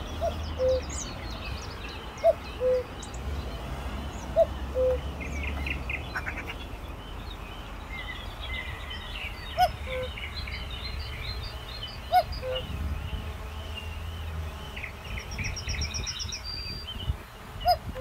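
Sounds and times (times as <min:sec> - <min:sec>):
songbirds singing and chirping: 0:00.0 - 0:18.0.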